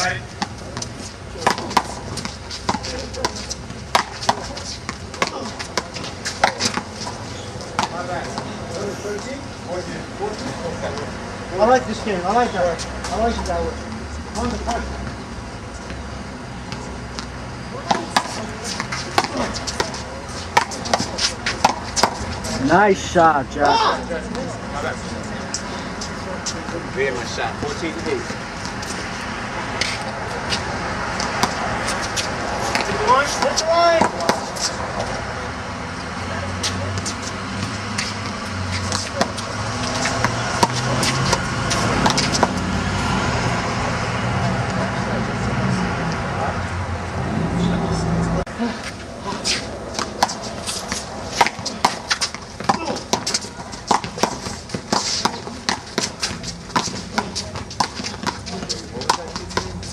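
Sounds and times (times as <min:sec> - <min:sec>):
city traffic rumble: 0:00.0 - 0:59.9.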